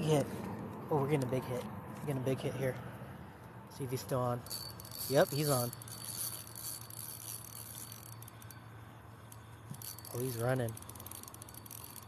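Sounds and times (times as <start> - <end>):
fishing reel clicks: 4.4 - 12.0.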